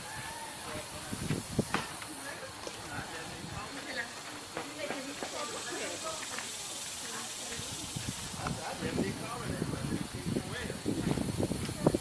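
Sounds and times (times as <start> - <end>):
high-pitched hiss: 0.0 - 12.0.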